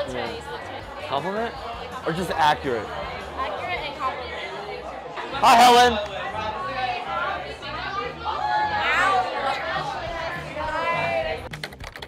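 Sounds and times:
people talking over one another: 0.0 - 11.5.

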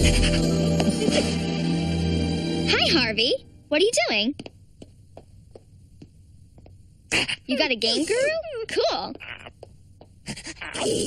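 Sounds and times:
low steady hum: 0.0 - 11.0
faint footsteps: 4.0 - 7.1, 8.0 - 10.7.

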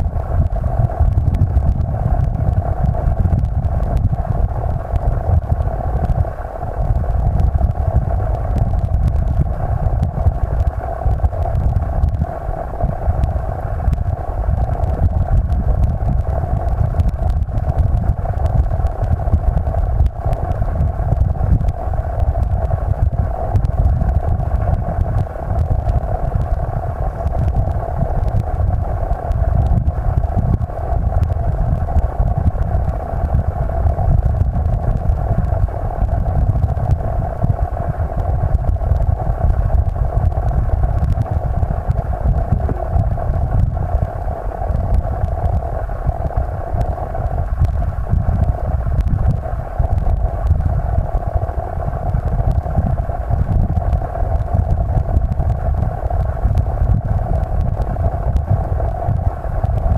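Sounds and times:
muffled underwater stream rumble: 0.0 - 59.9.

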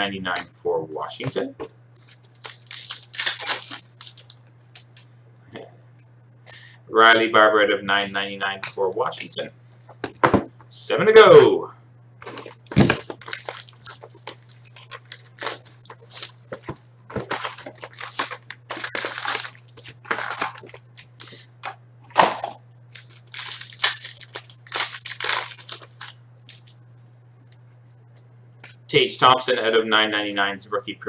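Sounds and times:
low electrical hum: 0.0 - 31.0
cards rustling: 1.6 - 5.1, 12.2 - 21.8, 22.9 - 26.8
shrink wrap tearing: 1.9 - 5.0, 12.2 - 21.4, 22.9 - 26.8.

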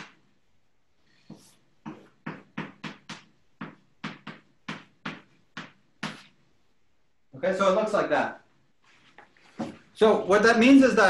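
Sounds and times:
chalk tapping on blackboard: 1.2 - 6.4.

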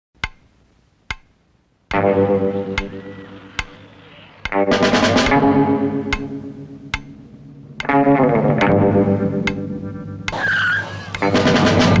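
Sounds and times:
wood block clicks: 0.2 - 0.5, 1.1 - 1.3, 1.9 - 4.6, 6.1 - 6.3, 6.9 - 7.2
low droning chord: 2.0 - 10.1.

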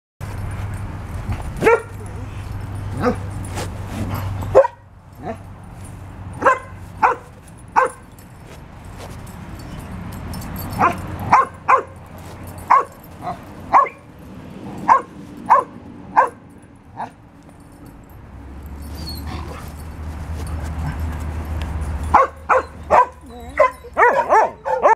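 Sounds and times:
dog yipping: 1.6 - 2.2, 6.4 - 8.1, 10.7 - 12.0, 12.6 - 14.1, 14.9 - 16.4, 18.8 - 19.8, 22.0 - 24.9.

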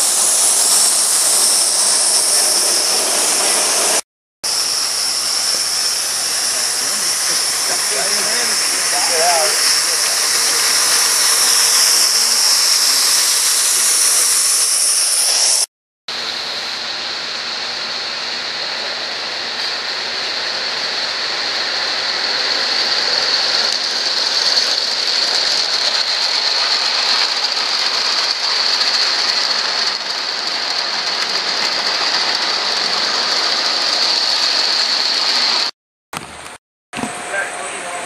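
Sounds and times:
steam train hissing past: 0.0 - 35.7, 37.0 - 38.0.

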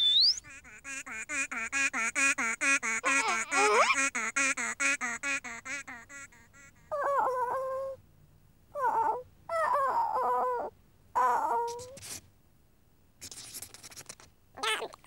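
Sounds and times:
squeaky warbling cartoon chatter: 2.8 - 4.2, 14.6 - 15.0
high-pitched moaning cries: 3.0 - 4.0, 6.7 - 8.0, 8.8 - 11.8.

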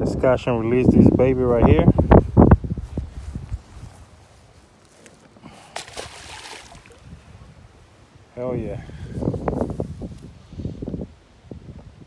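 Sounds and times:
fish splashing into water: 5.5 - 7.0.

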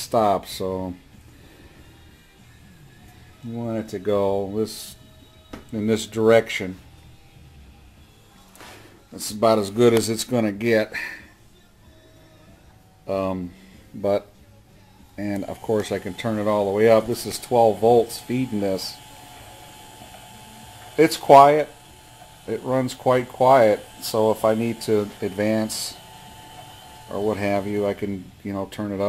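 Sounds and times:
motor faint steady hum: 11.2 - 29.0.

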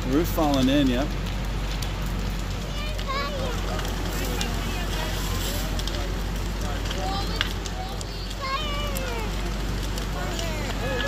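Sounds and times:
fire crackling and popping: 0.0 - 11.0.

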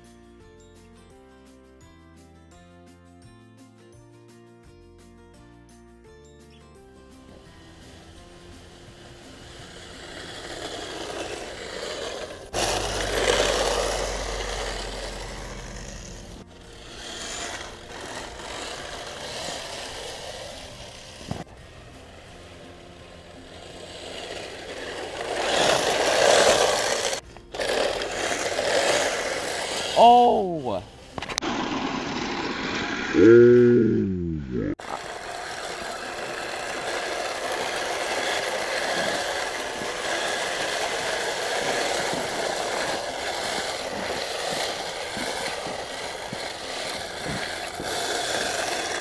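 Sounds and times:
music: 0.0 - 31.4
rc snowmobiles running through snow: 7.3 - 33.5, 34.8 - 49.0.

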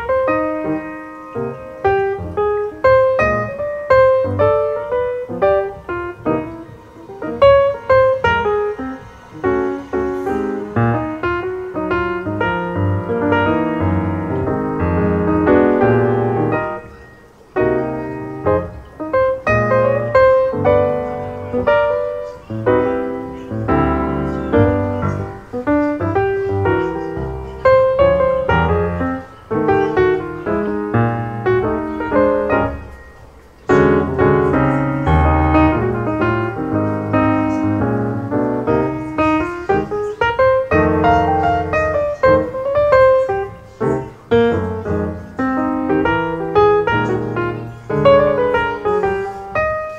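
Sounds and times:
piano music: 0.0 - 49.9.

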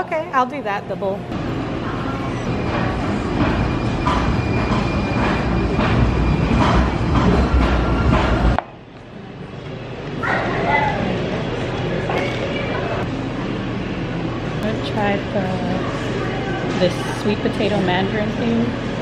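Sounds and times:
light-rail train rumbling past: 0.0 - 10.0.

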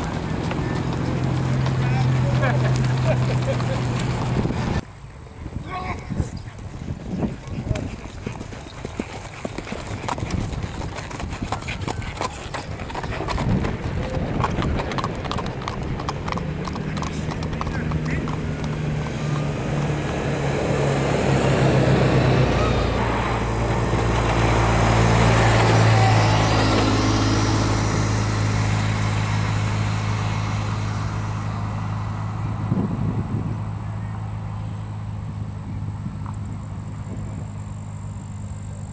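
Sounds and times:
horse hoofbeats: 0.0 - 4.8, 5.8 - 28.1
vehicle engine humming: 0.0 - 38.9.

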